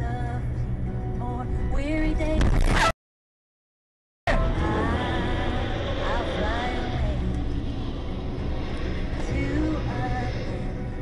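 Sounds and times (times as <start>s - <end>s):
car road and engine rumble: 0.0s - 2.9s, 4.3s - 11.0s.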